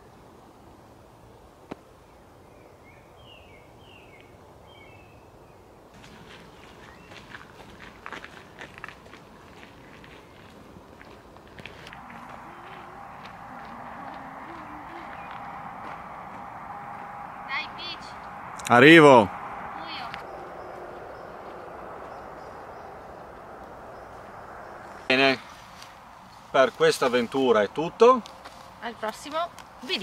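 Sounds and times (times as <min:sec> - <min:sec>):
footsteps on gravel: 0:06.0 - 0:17.0
faint hum: 0:11.6 - 0:26.5
bird chirping: 0:11.9 - 0:26.5.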